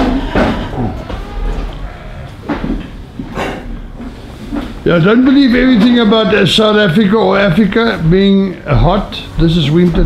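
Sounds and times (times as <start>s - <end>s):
goats bumping steel panels: 5.0s - 6.8s.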